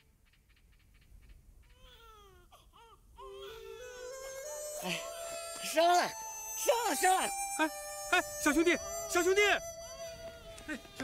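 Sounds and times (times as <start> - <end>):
newborn baby crying: 1.7 - 6.6, 8.8 - 11.0
music with held notes: 3.3 - 11.0.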